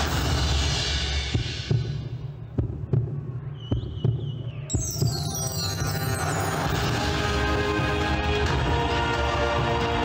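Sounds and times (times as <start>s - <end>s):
loud music: 4.7s - 10.0s.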